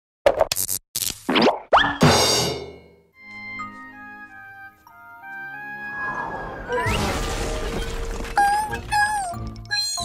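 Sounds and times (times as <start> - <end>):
soft background music: 3.2 - 6.8, 7.8 - 10.0.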